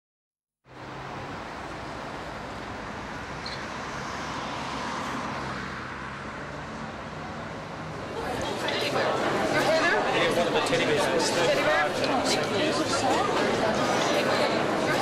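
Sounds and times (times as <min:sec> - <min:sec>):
road noise: 0:00.6 - 0:15.0.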